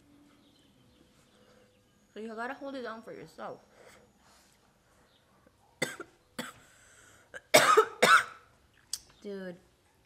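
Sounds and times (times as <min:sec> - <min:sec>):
woman coughing: 0:05.8 - 0:06.6, 0:07.4 - 0:08.5.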